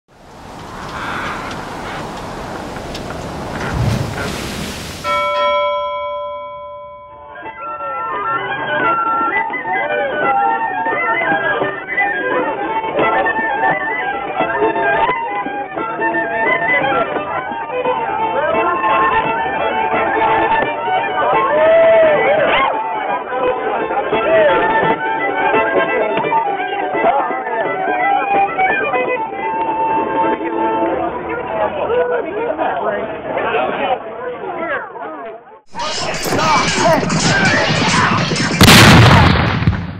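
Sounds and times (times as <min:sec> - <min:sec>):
rushing hiss: 0:00.1 - 0:05.1
people's voices: 0:00.2 - 0:05.2, 0:18.0 - 0:39.4
fiddle tune: 0:05.0 - 0:32.8.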